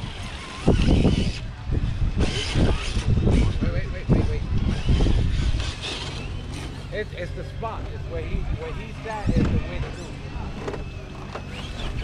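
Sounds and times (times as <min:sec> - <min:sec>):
low rumble on microphone: 0:00.0 - 0:12.0
people talking indistinctly: 0:01.1 - 0:12.0.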